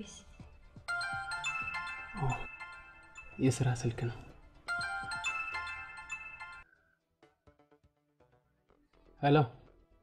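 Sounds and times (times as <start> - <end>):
mobile phone ringtone melody: 0.8 - 6.8.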